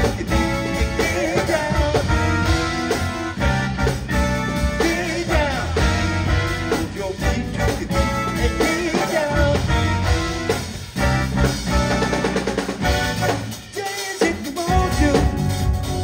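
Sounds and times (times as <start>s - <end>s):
electric bass: 0.0s - 13.8s, 14.7s - 16.0s
drum kit groove: 0.0s - 16.0s.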